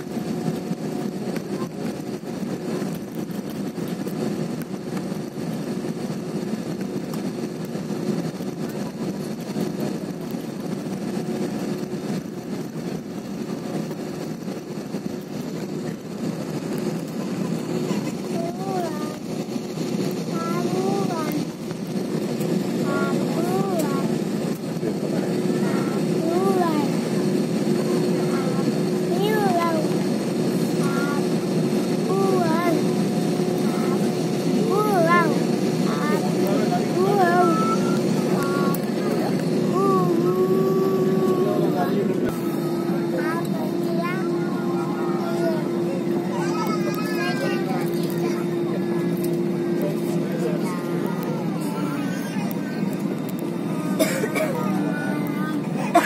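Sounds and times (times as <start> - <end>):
jet engines humming in cabin: 0.0 - 56.0
voices talking: 15.4 - 56.0.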